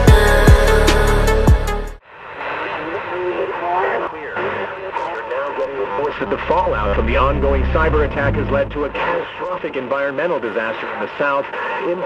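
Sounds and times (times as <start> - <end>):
radio crackly broadcast voices: 2.2 - 12.0
low rumble: 6.0 - 9.4.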